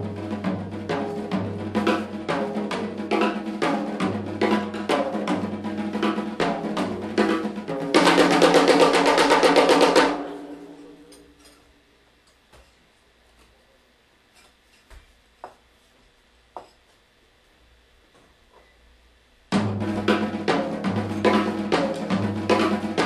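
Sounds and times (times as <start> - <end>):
snare and drum strokes: 0.0 - 10.9, 19.5 - 23.0
drum roll with cymbals: 0.0 - 11.2, 19.5 - 23.0
jazz band playing: 19.6 - 23.0.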